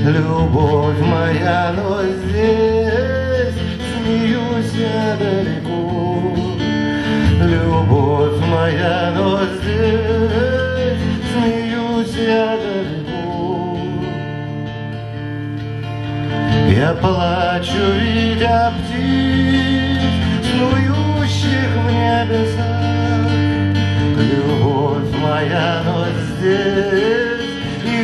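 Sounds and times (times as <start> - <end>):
strummed acoustic guitar: 0.0 - 28.0
wavering melodic lead line: 0.0 - 28.0.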